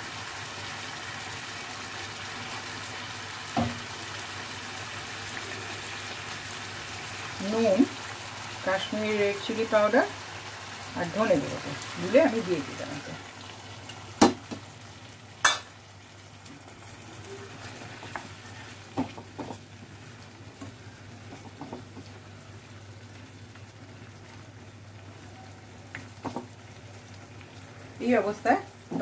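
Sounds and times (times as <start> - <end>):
chicken frying with low sizzle: 0.0 - 29.0
spatula knocking against pan: 21.3 - 22.0.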